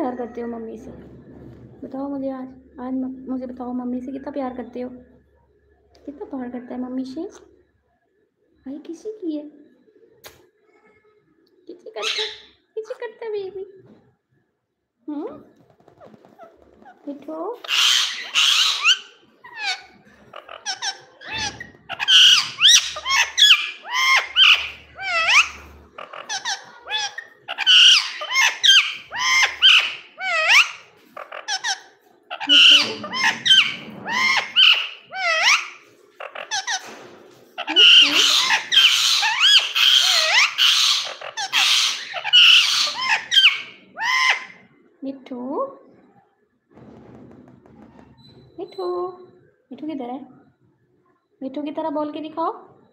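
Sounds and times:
parakeet chattering and chirping: 12.0s - 12.5s, 15.6s - 44.7s.

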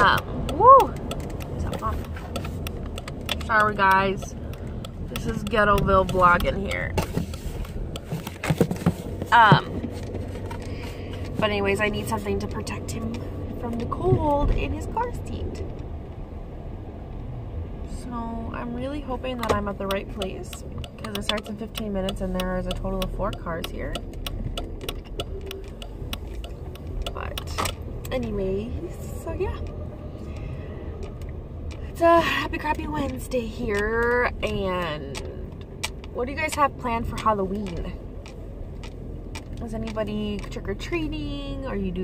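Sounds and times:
car cabin rumble: 0.0s - 42.0s
turn signal clicking: 0.0s - 42.0s.

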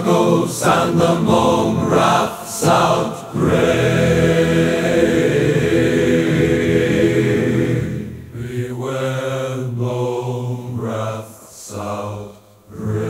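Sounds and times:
chant-like held sung note: 0.0s - 13.0s.

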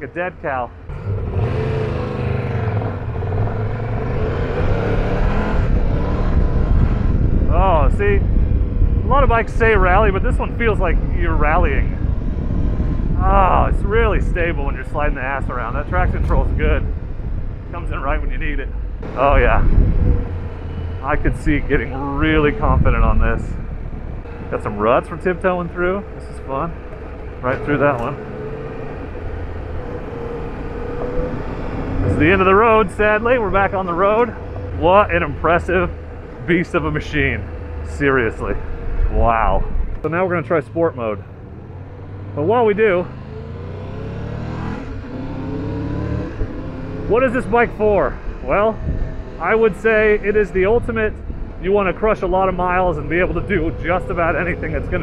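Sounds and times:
trail noise: 0.0s - 55.0s
wind rushing: 3.3s - 40.1s, 41.4s - 55.0s.

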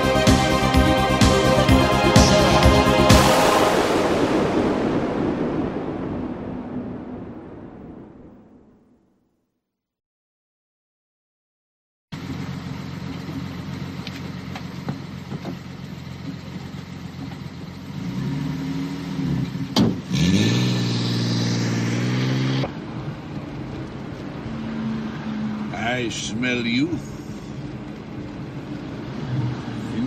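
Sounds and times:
car engine revving: 0.0s - 7.1s, 12.2s - 30.0s.

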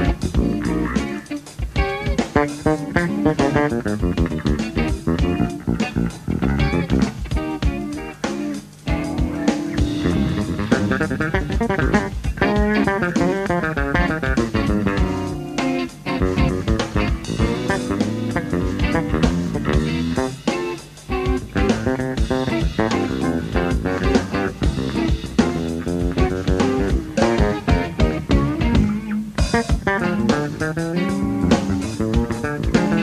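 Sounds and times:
electric bass: 0.0s - 8.1s, 8.9s - 20.5s, 21.1s - 33.0s
busy drumming: 0.0s - 33.0s
electric guitar: 0.0s - 33.0s.

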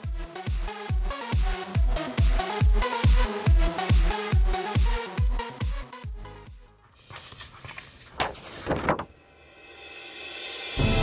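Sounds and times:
theme music: 9.7s - 11.0s.

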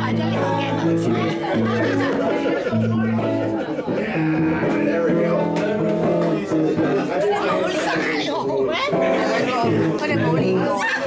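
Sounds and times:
drums: 0.0s - 7.2s
bass guitar: 0.0s - 11.0s
electric guitar: 0.0s - 11.0s.

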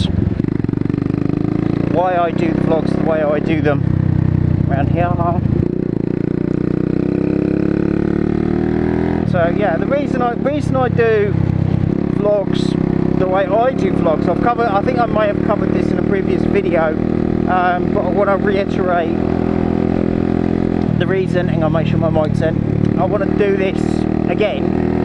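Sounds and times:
motorcycle engine running: 0.0s - 25.0s.

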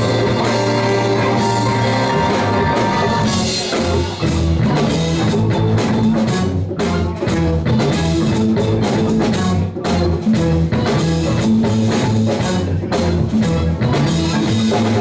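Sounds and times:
bass guitar: 0.0s - 15.0s
drum kit: 0.0s - 15.0s
electric guitar: 0.0s - 15.0s
keyboard: 0.0s - 15.0s.

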